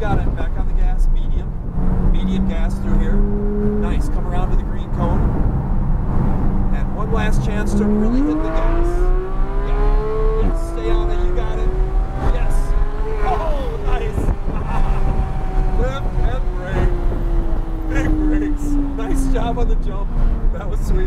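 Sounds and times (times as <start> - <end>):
car engine at speed from cabin: 0.0 - 21.0.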